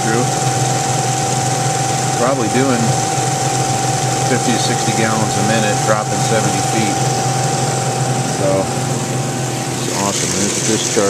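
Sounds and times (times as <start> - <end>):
machine low hum: 0.0 - 11.0
turbine high whine: 0.0 - 11.0.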